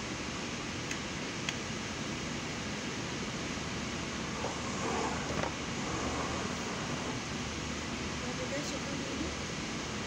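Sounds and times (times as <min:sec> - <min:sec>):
ventilation hiss and hum: 0:00.0 - 0:10.0.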